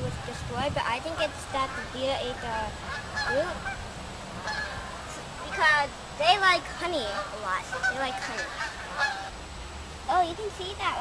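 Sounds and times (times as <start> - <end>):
geese honking: 1.2 - 5.8, 6.6 - 9.4.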